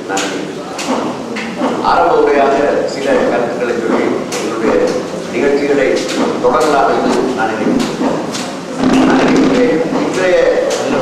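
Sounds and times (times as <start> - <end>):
man speaking into a microphone: 1.8 - 8.0, 8.8 - 11.0.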